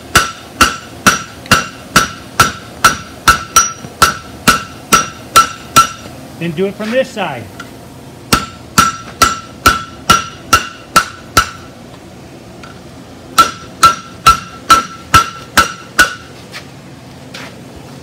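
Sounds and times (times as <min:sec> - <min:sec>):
anvil ringing: 0:00.1 - 0:06.0, 0:08.3 - 0:11.7, 0:13.4 - 0:16.3.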